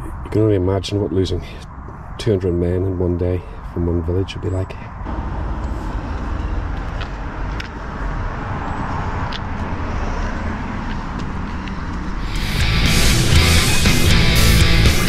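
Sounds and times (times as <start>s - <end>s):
rock music with guitars: 12.2s - 15.0s.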